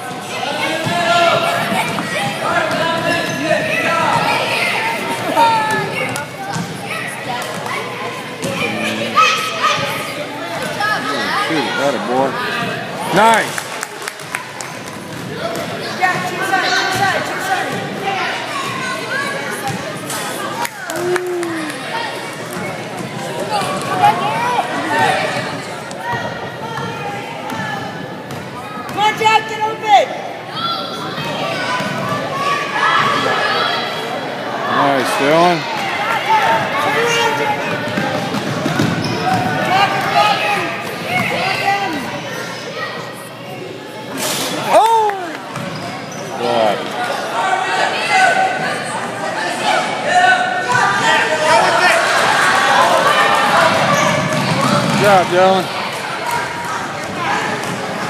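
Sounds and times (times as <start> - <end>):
voices of players and spectators: 0.0 - 58.0.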